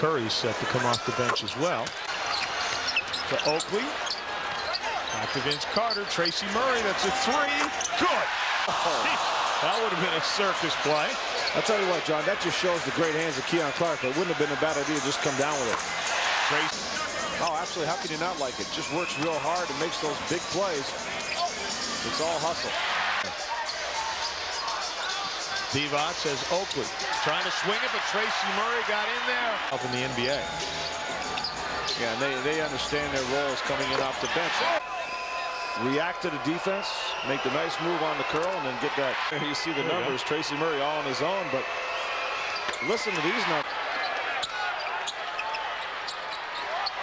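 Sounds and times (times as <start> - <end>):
arena crowd noise: 0.0 - 47.0.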